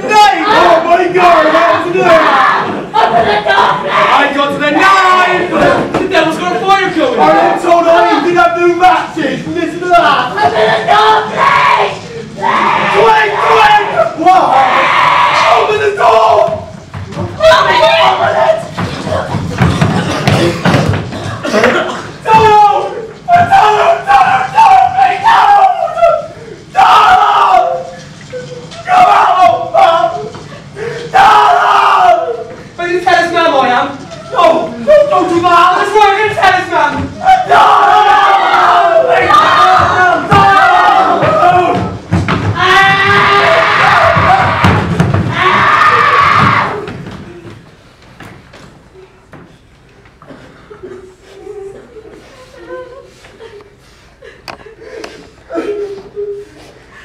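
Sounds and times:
thuds: 0:18.7 - 0:21.4, 0:41.2 - 0:45.7
loud long screaming: 0:42.6 - 0:46.9.

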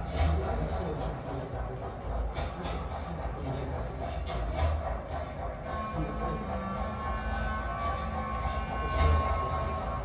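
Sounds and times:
low rumbling electronic drone: 0:00.0 - 0:10.0
thin held high tones: 0:04.0 - 0:10.0.

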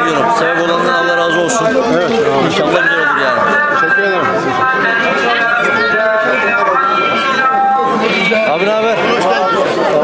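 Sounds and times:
men talking in a crowd: 0:00.0 - 0:10.0.

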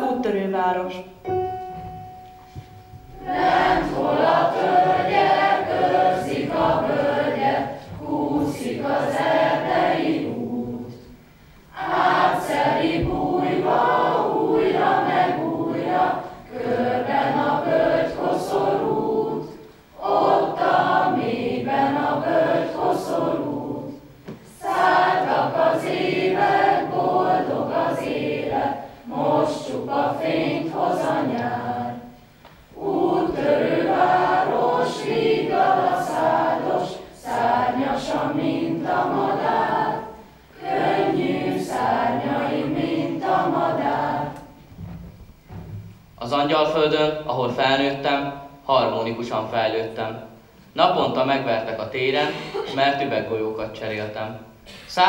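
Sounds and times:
choir singing unaccompanied: 0:01.3 - 0:44.7.

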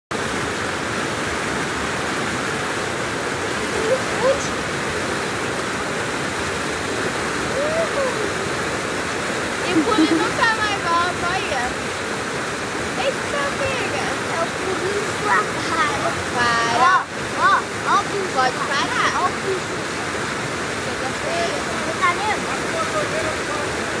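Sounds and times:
whitewater rushing: 0:00.1 - 0:24.0.

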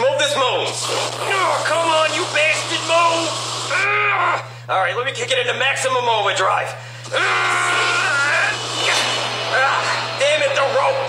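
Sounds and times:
man yelling: 0:03.7 - 0:04.5, 0:07.1 - 0:10.9.

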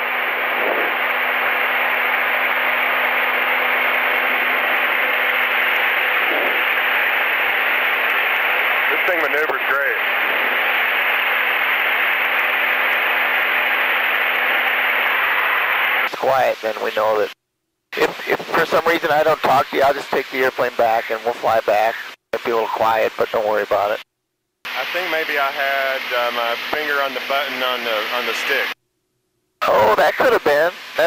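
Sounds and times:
low steady hum: 0:00.0 - 0:19.2
cockpit engine and wind hiss: 0:24.7 - 0:28.8.

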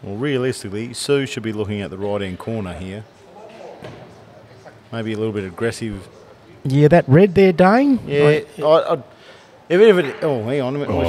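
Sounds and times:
murmur of voices: 0:08.0 - 0:11.0.

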